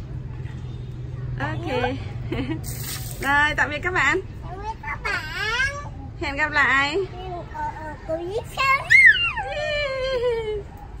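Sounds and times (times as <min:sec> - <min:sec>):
boy shouting: 0:08.6 - 0:09.5.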